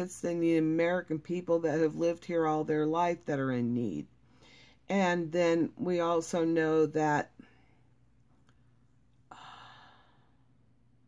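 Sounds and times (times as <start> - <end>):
woman sighing: 9.3 - 10.3.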